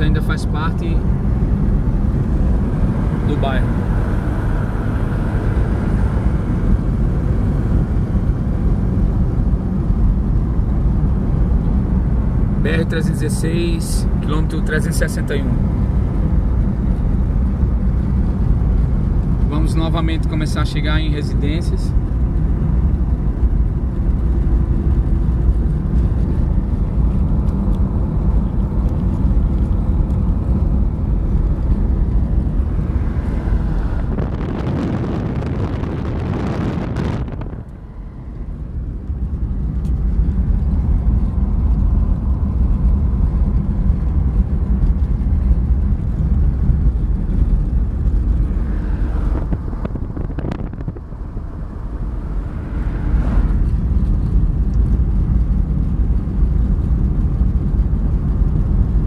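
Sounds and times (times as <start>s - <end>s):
car engine and road rumble: 0.0s - 59.0s
loud rushing noise: 32.0s - 38.6s.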